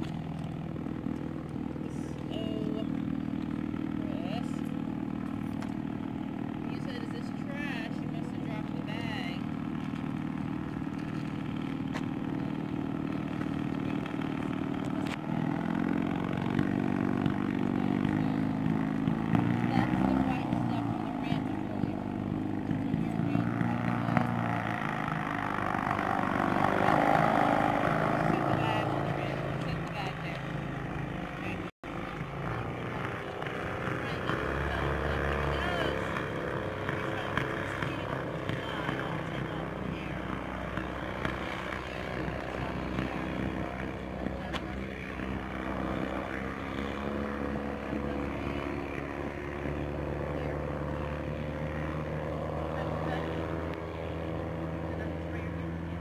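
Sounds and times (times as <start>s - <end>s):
gyrocopter engine droning: 0.0s - 56.0s.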